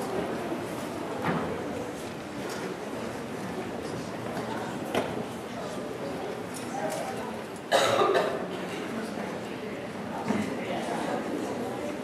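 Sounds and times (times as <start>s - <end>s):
steady background noise: 0.0s - 12.0s
person coughing: 7.7s - 8.4s.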